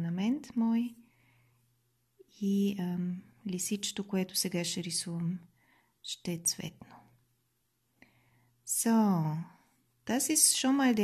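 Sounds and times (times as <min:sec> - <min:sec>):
woman speaking softly: 0:00.0 - 0:01.0, 0:02.2 - 0:07.1, 0:08.7 - 0:11.0.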